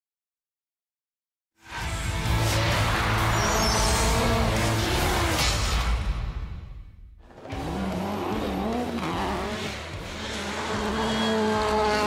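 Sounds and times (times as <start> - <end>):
rally car engine revving: 2.0 - 5.8, 7.2 - 12.0.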